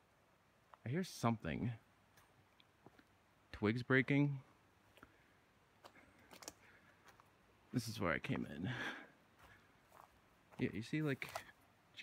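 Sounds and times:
faint twigs snapping: 6.2 - 6.7.

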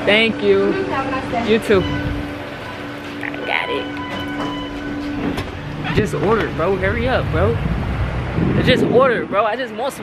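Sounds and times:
steady electrical hum: 0.0 - 10.0
low rumble: 1.7 - 2.6, 4.5 - 9.6.

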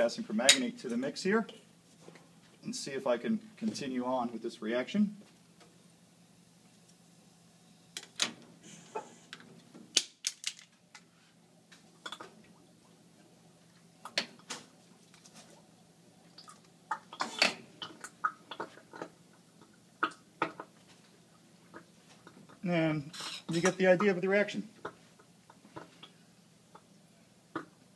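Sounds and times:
low steady hum: 0.0 - 27.9.

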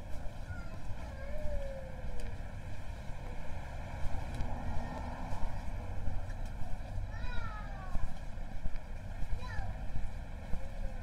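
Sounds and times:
low rumble of traffic: 0.0 - 11.0
vehicle engine passing by: 2.6 - 7.1.

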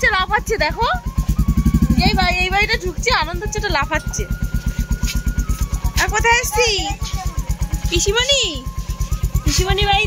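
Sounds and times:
people talking: 0.0 - 1.0, 1.9 - 4.4, 5.8 - 8.7, 9.4 - 10.0
motorcycle engine idling: 0.0 - 10.0.

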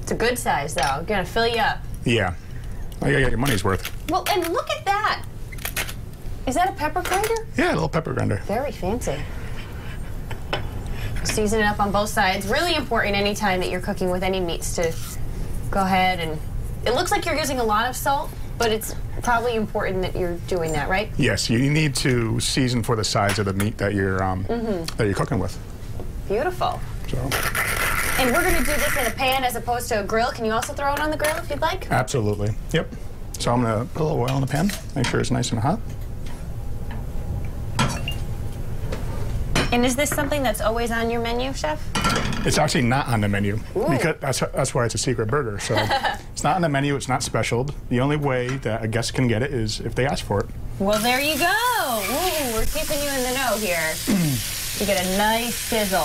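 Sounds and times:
low room tone hum: 0.0 - 56.0
glass bottle clink: 37.8 - 38.2.

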